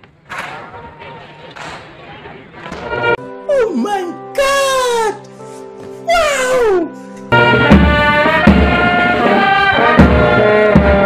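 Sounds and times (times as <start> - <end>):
sustained music backing: 0.0 - 11.0
man crying out: 6.0 - 7.0
music with drum beat: 7.5 - 11.0.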